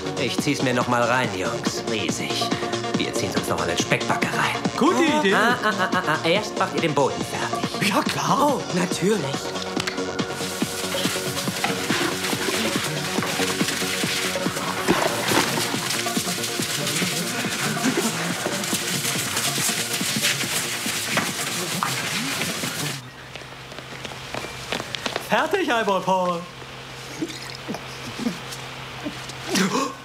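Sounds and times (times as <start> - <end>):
background music: 0.0 - 23.0.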